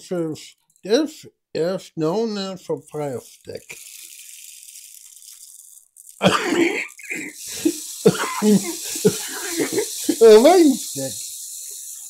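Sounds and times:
man's voice: 0:00.0 - 0:03.8, 0:06.2 - 0:11.2
rain stick beads trickling: 0:02.9 - 0:12.0
people laughing: 0:06.2 - 0:10.8.

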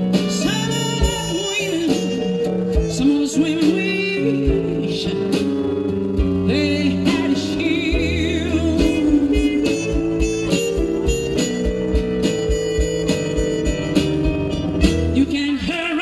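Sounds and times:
wavering lead melody: 0:00.0 - 0:15.7
held keyboard chords: 0:00.0 - 0:15.9.

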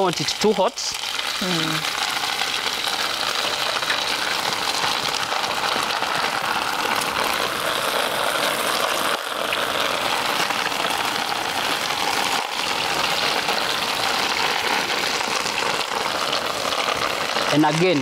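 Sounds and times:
food sizzling in hot oil: 0:00.0 - 0:18.0.

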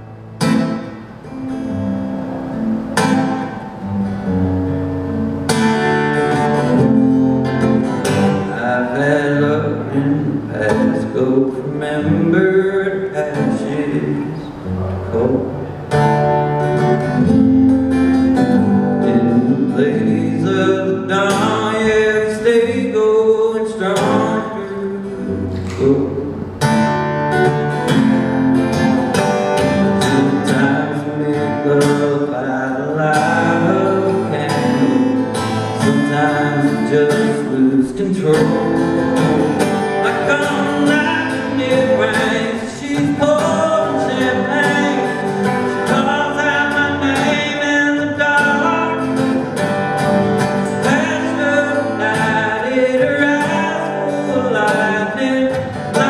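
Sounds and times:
strummed acoustic guitar: 0:00.0 - 0:56.0
man singing: 0:06.1 - 0:16.1, 0:17.0 - 0:26.7, 0:29.5 - 0:56.0.

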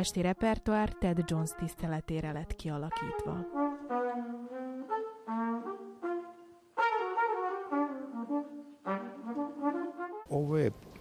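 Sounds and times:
jazz trumpet held notes: 0:00.0 - 0:10.7
big band brass chords: 0:02.9 - 0:10.3.

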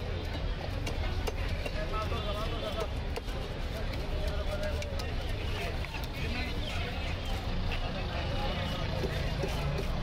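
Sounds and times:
background voices talking: 0:00.0 - 0:10.0
road traffic rumble: 0:00.0 - 0:10.0.

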